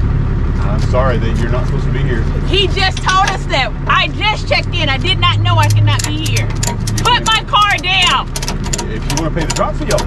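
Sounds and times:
truck engine idling: 0:00.0 - 0:10.0
sharp clicks: 0:05.6 - 0:10.0.

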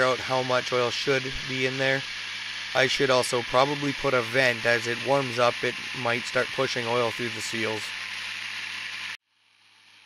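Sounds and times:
supercharger spinning with rushing hiss: 0:00.0 - 0:10.0.

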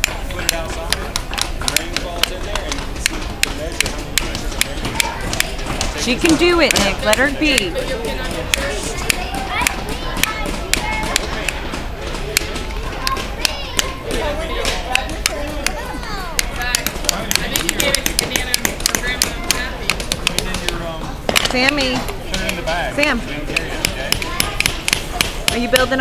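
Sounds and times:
chatter of voices: 0:00.0 - 0:26.0.

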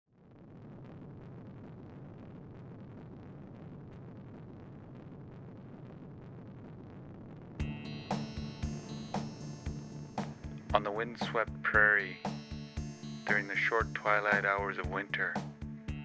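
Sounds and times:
steady rushing noise: 0:07.6 - 0:16.0.

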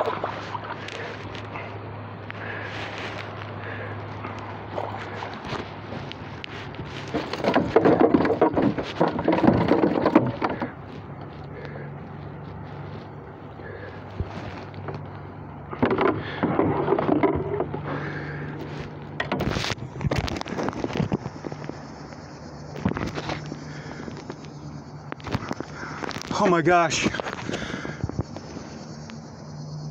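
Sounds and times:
sharp knocks against boat: 0:07.0 - 0:10.8, 0:15.7 - 0:18.0
microphone handling rustle: 0:18.6 - 0:24.5, 0:27.0 - 0:28.5
wind rushing over microphone: 0:19.3 - 0:23.4, 0:25.2 - 0:28.8.

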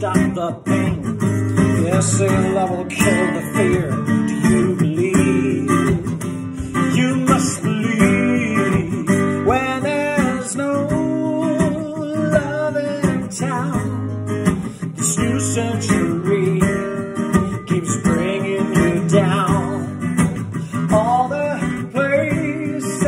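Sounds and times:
acoustic guitar strumming: 0:00.0 - 0:23.0
man singing: 0:00.0 - 0:23.0.

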